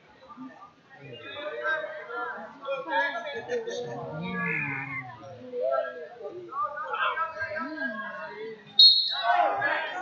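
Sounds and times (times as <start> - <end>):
background chatter: 0.0 - 10.0
drawn-out yell: 3.9 - 5.4.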